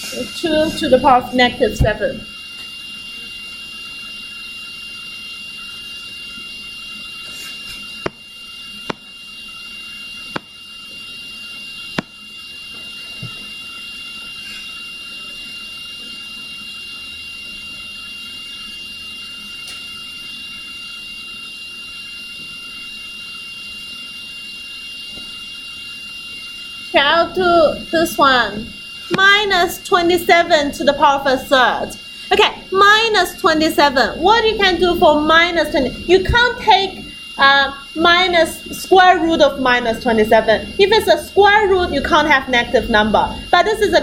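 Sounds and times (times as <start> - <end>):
electronic hiss: 0.0 - 29.5
faint high-pitched whine: 24.4 - 44.0.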